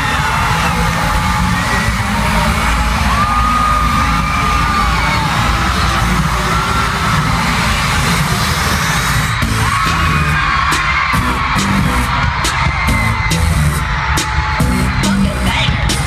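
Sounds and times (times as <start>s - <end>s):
crowd screaming and cheering: 0.0s - 16.0s
heavy drum beat: 0.0s - 16.0s
loud live concert music: 0.0s - 16.0s.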